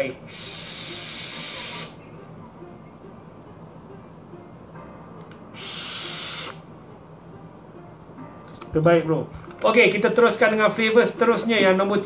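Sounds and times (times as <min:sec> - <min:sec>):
breathy vaping hiss: 0:00.0 - 0:02.0, 0:05.5 - 0:06.6
vapour blown out: 0:00.2 - 0:02.0, 0:05.4 - 0:06.7.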